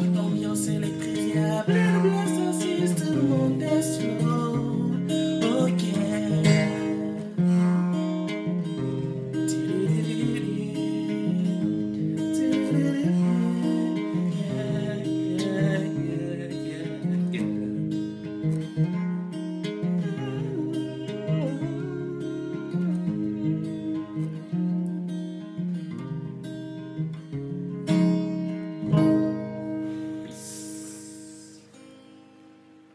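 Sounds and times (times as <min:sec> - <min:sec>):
acoustic guitar strumming: 0:00.0 - 0:32.9.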